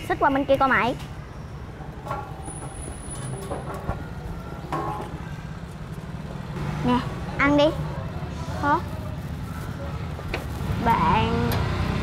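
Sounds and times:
rumble of passing vehicles: 0.0s - 12.0s
faint voices: 6.9s - 11.4s.

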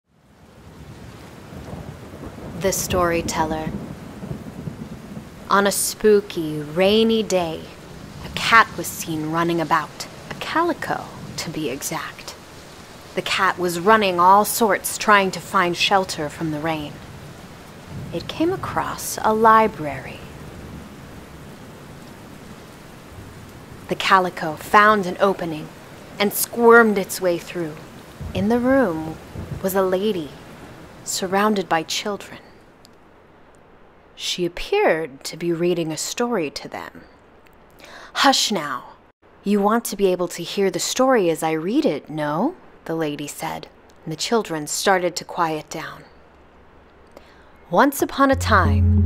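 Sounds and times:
rain: 0.1s - 36.3s, 36.9s - 49.0s
thunder rumbling: 1.6s - 5.8s, 17.9s - 21.0s, 28.1s - 30.8s, 48.3s - 49.0s
low rumble: 28.2s - 29.6s, 48.3s - 49.0s.

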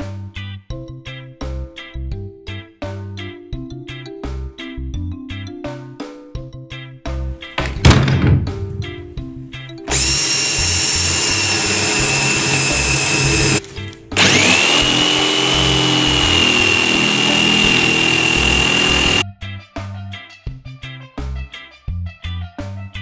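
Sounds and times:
background music: 0.0s - 23.0s
thump: 7.6s - 9.1s
jigsaw cutting plywood: 9.9s - 19.2s.

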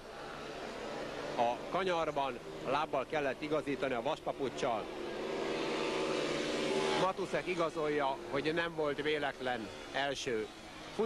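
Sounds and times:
motorcycle engines droning: 0.0s - 11.0s.

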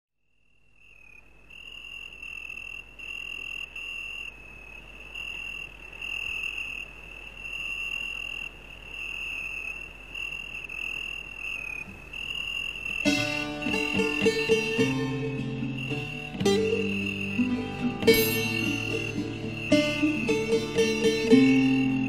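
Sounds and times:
crickets chirping: 0.2s - 22.0s.

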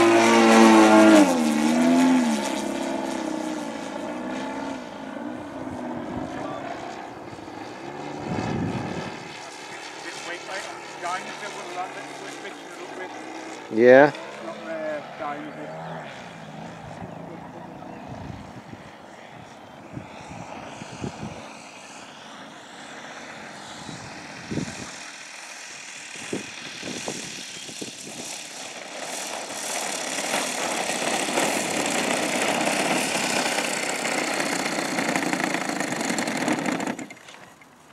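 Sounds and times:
model plane engine and propeller: 0.0s - 37.9s.

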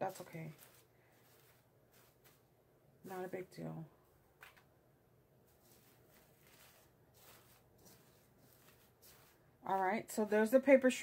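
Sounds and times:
faint paper rustling: 0.0s - 2.5s, 4.3s - 4.7s, 5.4s - 10.5s.

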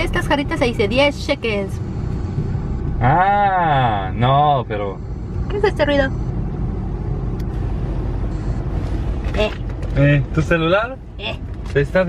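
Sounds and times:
low rumbling buzz in car cabin: 0.0s - 12.0s.

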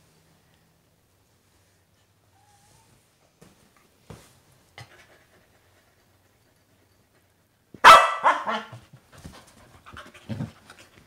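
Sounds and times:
dog panting: 9.2s - 11.0s.

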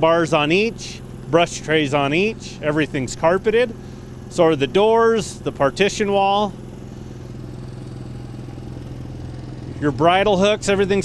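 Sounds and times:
engine humming steadily: 0.0s - 11.0s.

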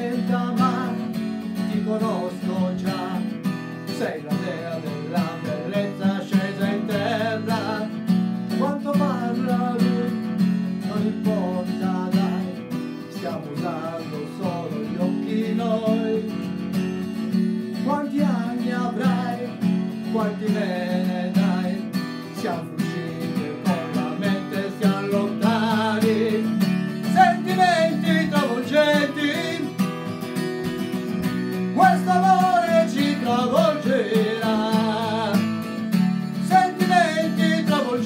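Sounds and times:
man singing with vibrato: 0.0s - 16.7s, 17.7s - 30.1s, 31.6s - 38.0s
acoustic guitar strumming: 0.0s - 38.0s.

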